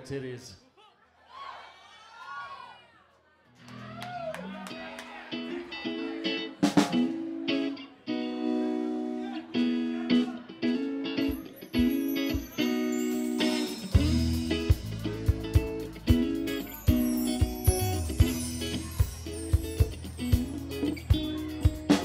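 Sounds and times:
electric guitar playing rock: 4.8 - 22.0.

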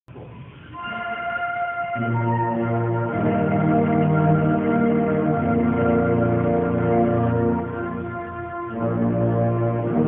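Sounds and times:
marching band wind instruments: 0.7 - 10.0.

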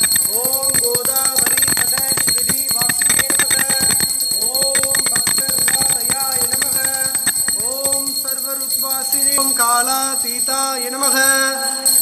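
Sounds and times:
bell ringing rapidly: 0.0 - 12.0
devotional chanting: 0.0 - 12.0.

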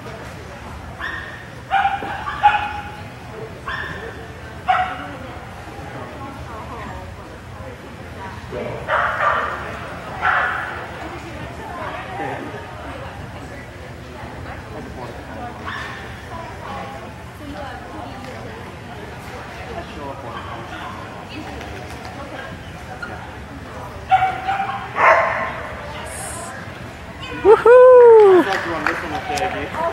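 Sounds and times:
dog barking: 1.0 - 2.9, 3.7 - 4.0, 4.7 - 5.0, 8.9 - 9.6, 10.2 - 10.8, 24.1 - 25.6.

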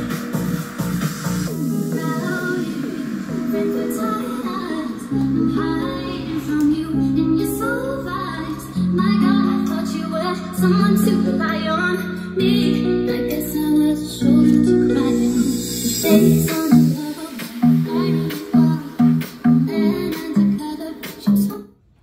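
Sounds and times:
pop music with woman singing: 0.0 - 21.8.

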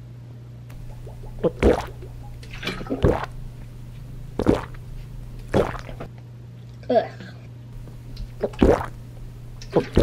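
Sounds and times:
low steady hum: 0.0 - 10.0
person gulping water: 0.7 - 6.1, 7.8 - 10.0.

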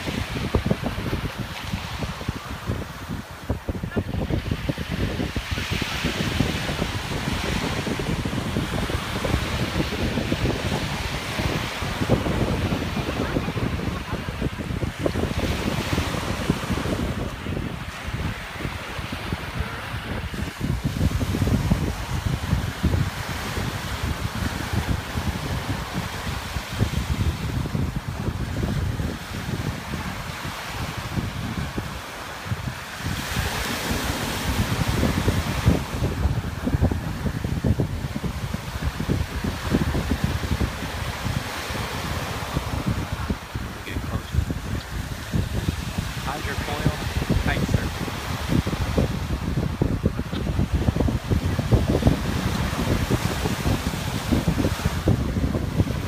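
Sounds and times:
small waves breaking: 0.0 - 56.0
wind buffeting microphone: 0.0 - 56.0.

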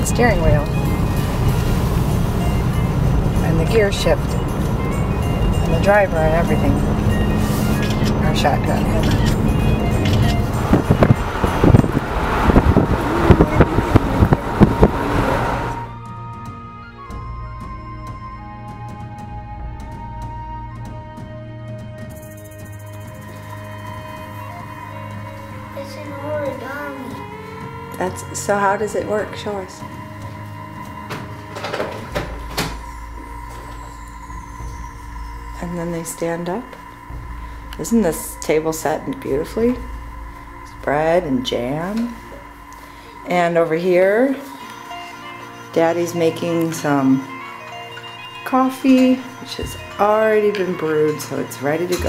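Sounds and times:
car road and engine noise: 0.0 - 16.4, 22.2 - 45.7
background music: 0.0 - 52.0.

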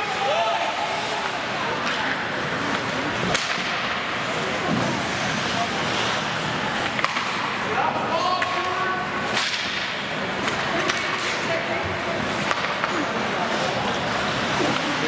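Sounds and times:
sticks clacking on puck: 1.2 - 4.0, 6.8 - 7.6, 8.4 - 11.5, 12.3 - 13.1
skates hissing on ice: 4.2 - 6.8.

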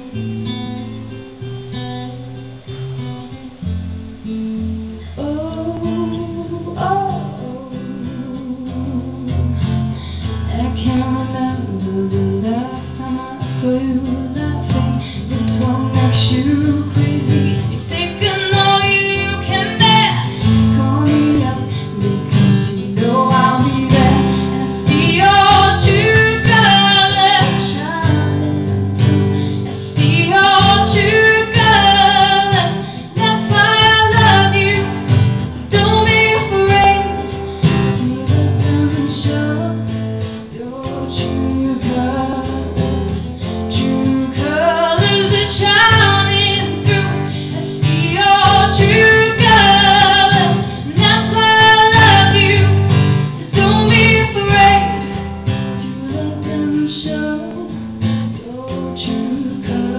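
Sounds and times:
acoustic guitar strumming: 0.0 - 59.9
woman singing into a microphone: 3.2 - 59.9.

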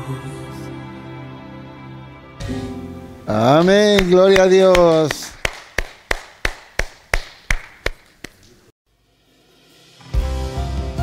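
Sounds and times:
hands clapping: 3.3 - 8.7.

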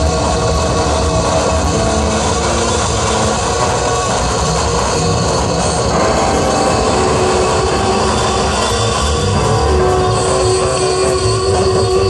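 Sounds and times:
amplified guitar: 0.0 - 12.0
electronic drone: 0.0 - 12.0.

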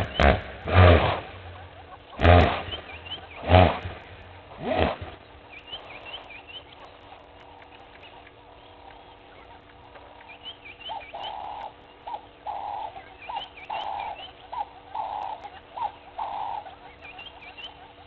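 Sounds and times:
bird repeated calls: 0.0 - 18.0
higher bird chirps: 1.4 - 18.0.

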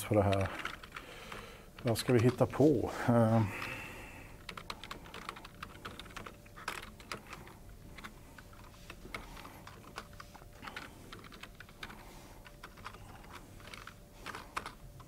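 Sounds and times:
computer keyboard typing: 0.0 - 15.0.

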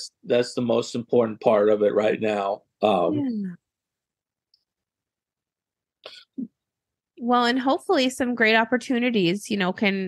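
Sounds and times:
person saying yeah quietly: 2.2 - 3.3.

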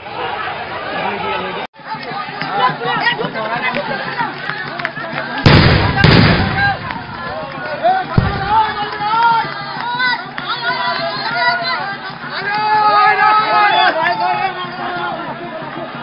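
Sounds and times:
crowd of men shouting: 2.1 - 16.0
loud explosive blasts: 5.5 - 7.2.

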